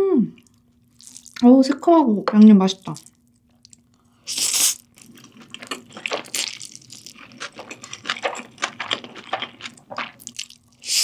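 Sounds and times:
slurping and chewing noodles: 1.0 - 1.4, 3.0 - 11.0.

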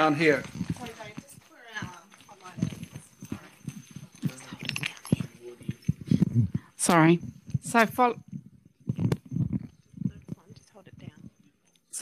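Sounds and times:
microphone handling knocks and clicks: 2.6 - 11.2.

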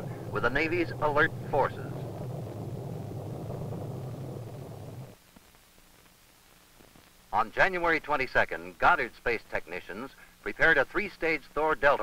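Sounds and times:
rocket motor rumbling: 0.0 - 5.2.

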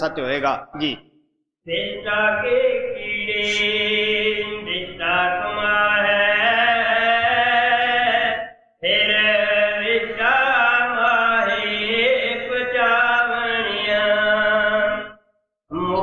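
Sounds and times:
man chanting: 1.7 - 15.1.

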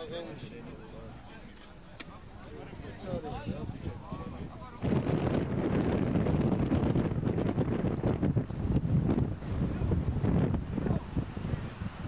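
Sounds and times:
wind buffeting microphone: 2.6 - 12.0.

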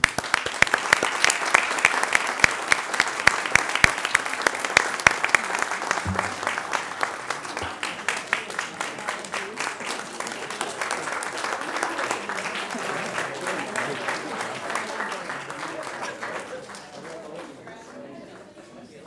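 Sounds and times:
crowd applauding: 0.0 - 18.6.

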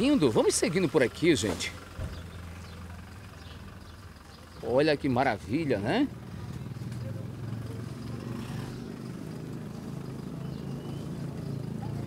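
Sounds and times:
distant voices: 0.0 - 12.0
vehicle engine hum: 0.0 - 12.0.

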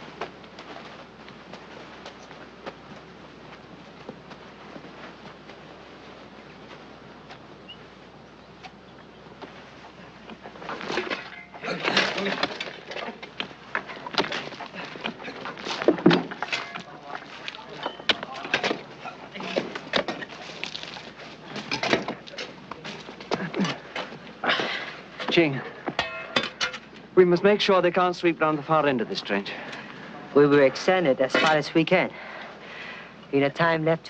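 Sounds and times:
digging tools knocking and scraping: 10.2 - 24.2.

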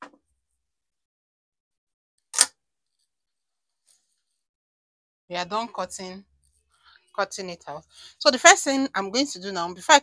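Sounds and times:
sharp click: 2.3 - 2.5.

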